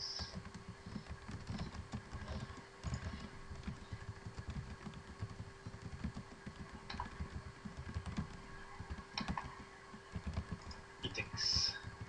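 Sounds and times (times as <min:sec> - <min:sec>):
typing on computer keyboard: 0:00.2 - 0:12.0.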